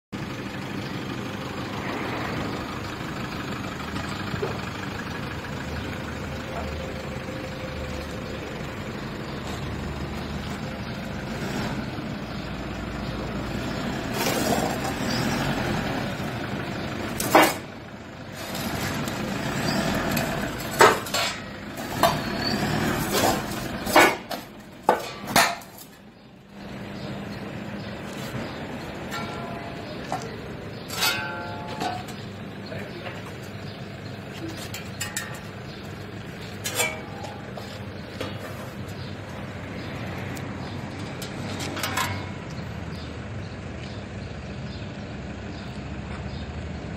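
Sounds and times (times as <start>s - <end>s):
diesel engine running: 0.1s - 46.9s
steel shovel blades clattering: 17.1s - 17.7s, 18.3s - 26.0s, 29.0s - 32.4s, 34.4s - 35.8s, 36.4s - 38.7s, 41.0s - 42.5s
sharp metal clanks: 17.2s - 17.7s, 20.1s - 26.0s, 29.0s - 32.2s, 34.7s - 35.5s, 36.5s - 37.6s, 41.0s - 42.6s.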